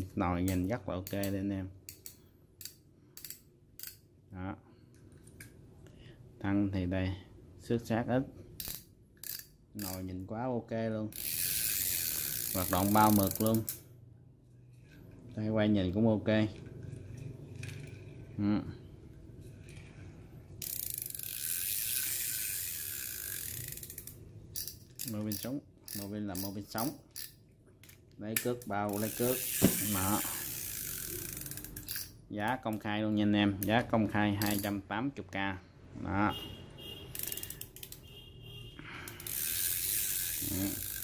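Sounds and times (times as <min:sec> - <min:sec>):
fishing reel clicking: 0:00.4 - 0:04.0, 0:08.6 - 0:10.1, 0:11.1 - 0:13.8, 0:20.6 - 0:32.9, 0:33.6 - 0:34.8, 0:37.1 - 0:38.0, 0:39.0 - 0:41.0.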